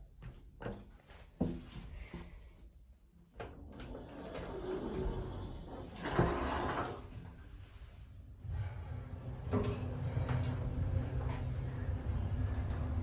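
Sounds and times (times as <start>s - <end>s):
sliding doors mechanical rumble: 3.6s - 7.2s, 8.4s - 13.0s.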